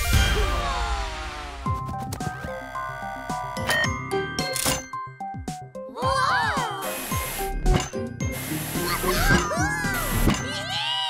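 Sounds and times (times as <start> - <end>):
cartoon background music: 0.0 - 11.0
cartoon sound effects: 8.7 - 11.0.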